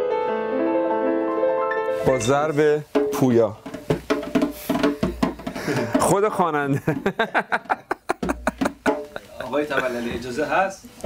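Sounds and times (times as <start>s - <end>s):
goblet drum strokes: 1.9s - 6.2s.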